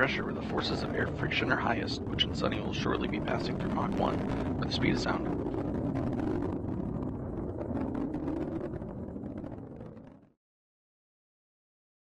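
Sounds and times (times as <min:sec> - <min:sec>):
rocket engine rumble: 0:00.0 - 0:10.4.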